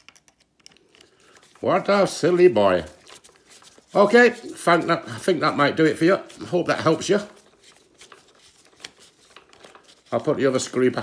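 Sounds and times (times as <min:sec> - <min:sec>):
screwdriver turning screw in plastic: 0:00.0 - 0:01.1.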